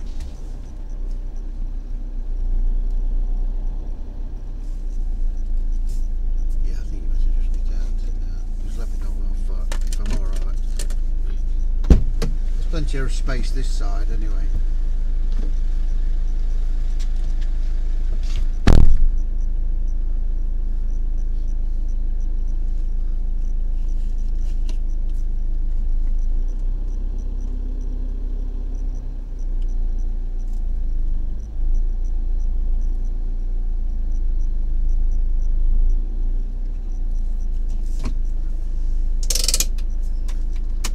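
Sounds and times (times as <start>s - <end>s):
faint regular ticking: 0.0s - 40.9s
vehicle engine idling: 0.0s - 40.9s
loud knock: 18.6s - 19.1s.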